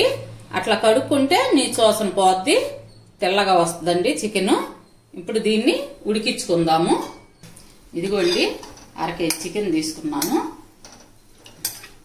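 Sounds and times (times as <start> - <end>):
metal spoon scraping glass bowl: 6.9 - 8.8.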